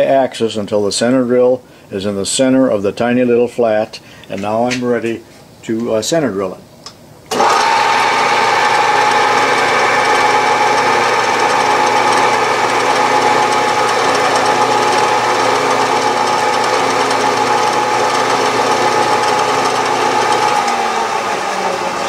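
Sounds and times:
drill cutting brass: 7.3s - 22.0s
milling machine spindle whine: 7.3s - 22.0s.

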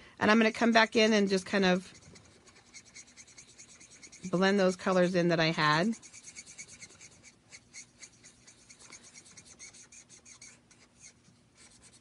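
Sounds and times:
marker tip rubbing on card: 0.4s - 12.0s.

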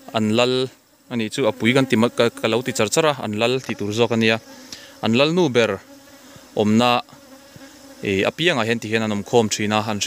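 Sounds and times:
bees buzzing past: 0.0s - 10.0s
hum of bee swarm: 0.0s - 10.0s.

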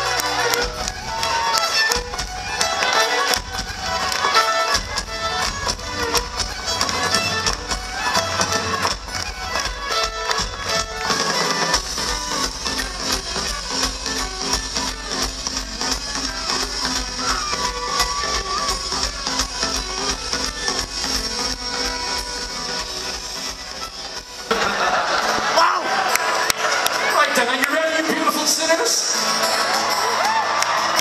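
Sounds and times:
fiddle melody: 0.0s - 31.0s
quick drum beats: 0.6s - 24.5s.

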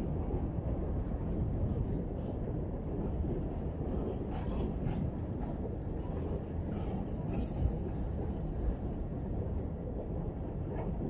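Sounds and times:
train wheels rumbling on rail: 0.0s - 11.0s.

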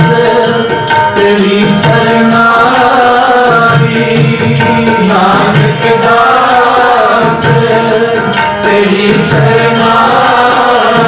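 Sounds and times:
harmonium chords: 0.0s - 11.0s
men chanting: 0.0s - 11.0s
tabla strokes: 0.0s - 11.0s.

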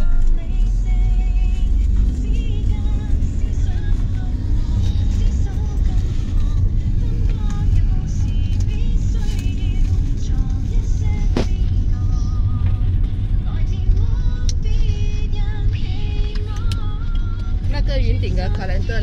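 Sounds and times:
car engine rumble and road noise: 0.0s - 19.0s
faint music: 0.0s - 19.0s.

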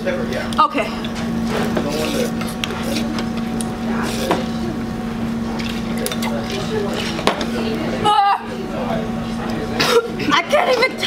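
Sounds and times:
background chatter: 0.0s - 11.0s
steady low hum: 0.0s - 11.0s.

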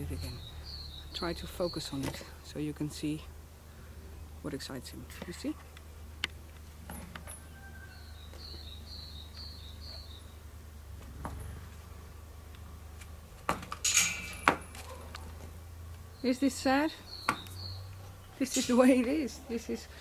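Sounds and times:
small bird chirping: 0.0s - 2.1s, 7.4s - 10.4s, 16.1s - 18.9s
metal chain clinking and rattling: 13.7s - 15.2s, 18.4s - 19.3s.

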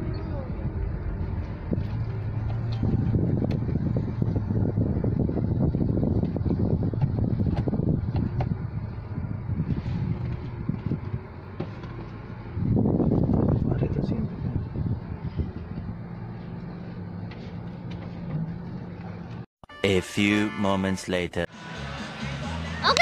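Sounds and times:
road rumble: 0.0s - 19.5s.

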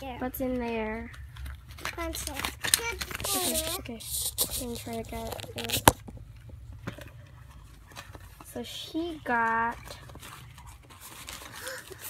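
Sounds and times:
gift bag clicks: 1.3s - 3.8s
child's voice: 2.0s - 4.0s.

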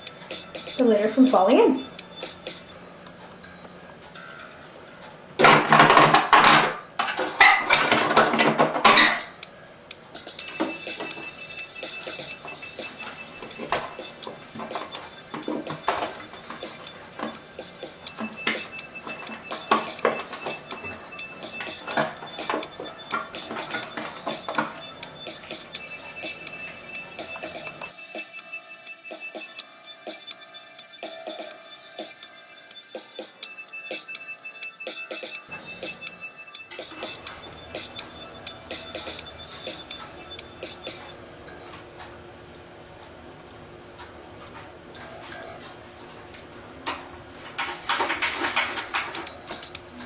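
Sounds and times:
faint music: 0.0s - 50.0s.

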